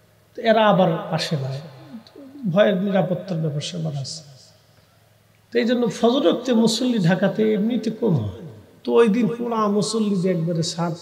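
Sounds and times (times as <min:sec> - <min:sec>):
man preaching into microphones: 0:00.4 - 0:04.6, 0:05.5 - 0:11.0.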